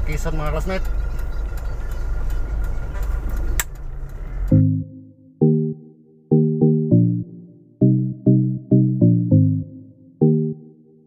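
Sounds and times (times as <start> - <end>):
vehicle engine and road rumble: 0.0 - 4.6.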